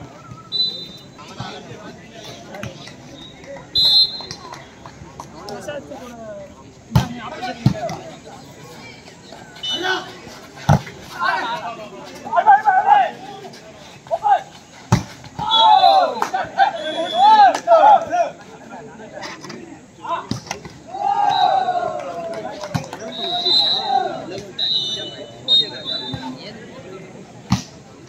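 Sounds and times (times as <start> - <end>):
players shouting calls: 0.1 - 6.2, 7.0 - 14.7, 15.3 - 18.4, 19.8 - 27.0.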